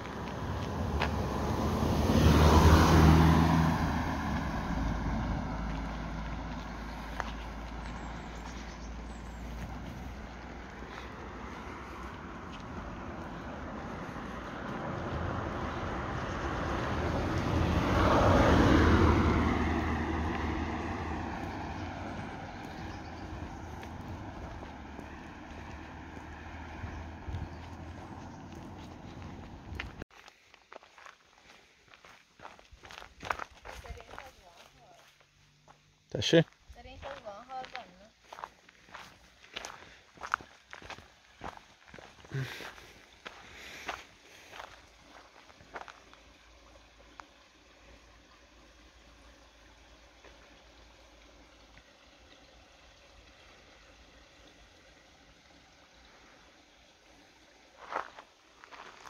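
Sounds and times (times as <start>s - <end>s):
motor vehicles passing: 0.0s - 30.0s, 32.0s - 59.0s.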